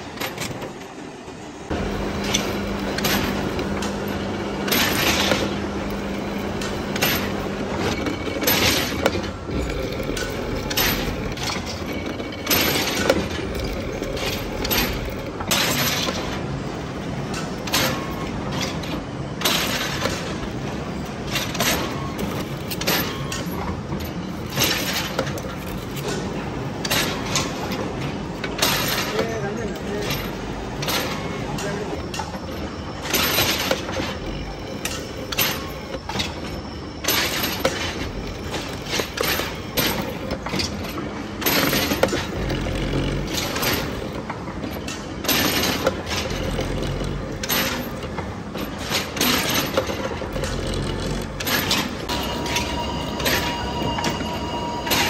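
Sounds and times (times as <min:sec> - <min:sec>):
machine running: 0:01.2 - 0:55.0.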